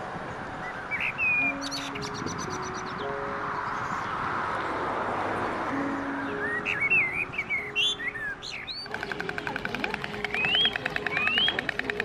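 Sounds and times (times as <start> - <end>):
songbirds chirping: 0.0 - 12.0
fast even pulsing rhythm: 8.8 - 12.0.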